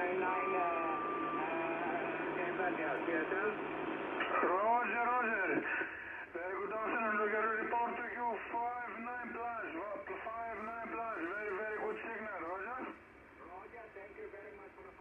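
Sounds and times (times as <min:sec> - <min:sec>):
radio voice from loudspeaker: 0:00.0 - 0:03.6, 0:04.3 - 0:13.0.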